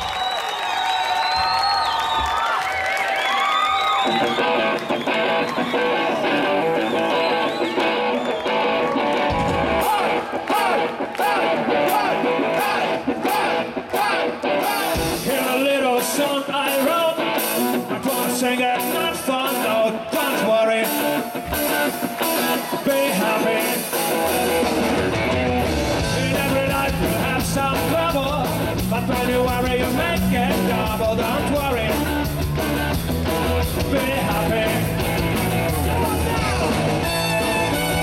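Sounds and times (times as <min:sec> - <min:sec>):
drums: 0:00.0 - 0:38.0
electric guitars: 0:02.1 - 0:38.0
person singing: 0:09.8 - 0:24.6, 0:26.0 - 0:32.1, 0:33.7 - 0:36.9.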